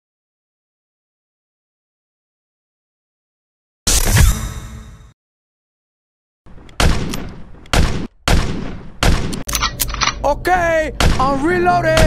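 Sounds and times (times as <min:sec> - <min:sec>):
loud gunshots: 0:06.8 - 0:09.5, 0:11.0 - 0:12.0.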